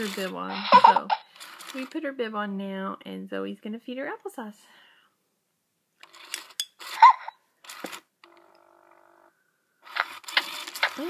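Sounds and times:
plastic spoon scraping container: 0:00.0 - 0:02.0, 0:09.9 - 0:11.0.

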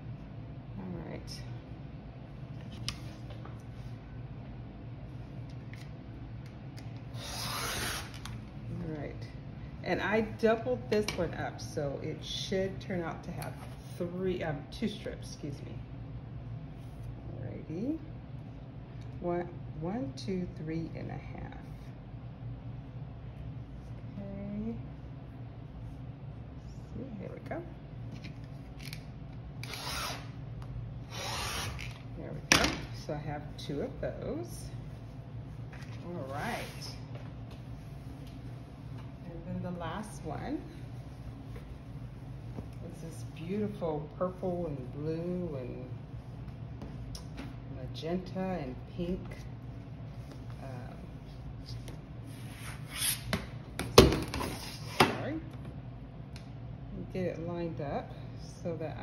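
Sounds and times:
rotary cutter slicing fabric: 0:07.2 - 0:08.3, 0:29.6 - 0:30.4, 0:31.1 - 0:32.0.

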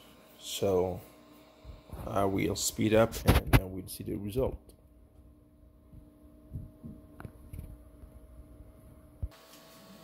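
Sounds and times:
printer fans and motors humming: 0:00.0 - 0:03.6, 0:05.0 - 0:10.0.

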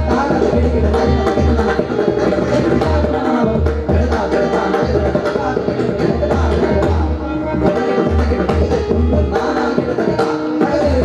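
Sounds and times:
harmonium melody: 0:00.0 - 0:11.0.

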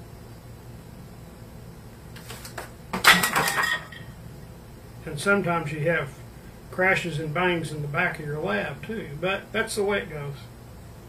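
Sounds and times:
objects crashing and clattering: 0:03.0 - 0:04.2.

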